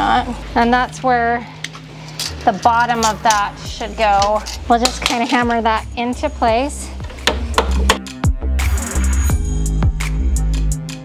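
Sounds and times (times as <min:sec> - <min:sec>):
hammer tapping wood: 0:07.2 - 0:08.0
electronic music with pulsing bass: 0:07.9 - 0:11.0.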